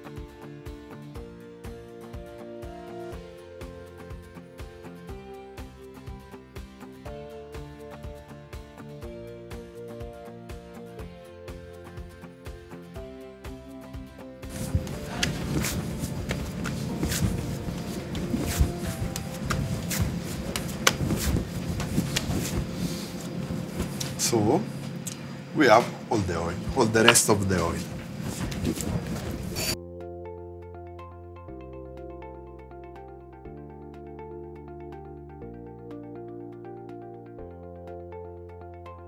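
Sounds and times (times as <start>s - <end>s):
plucked-string background music: 0.0s - 25.2s
hands kneading dough on a counter: 14.5s - 24.4s.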